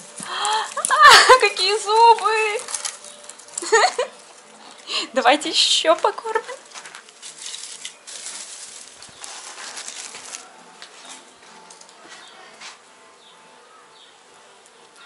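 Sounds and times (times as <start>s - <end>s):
dry hay rustling: 0.0s - 13.5s.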